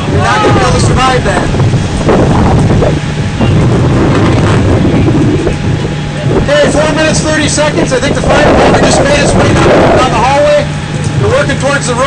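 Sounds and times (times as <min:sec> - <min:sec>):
fire engine rumbling: 0:00.0 - 0:12.0
wind buffeting microphone: 0:00.0 - 0:12.0.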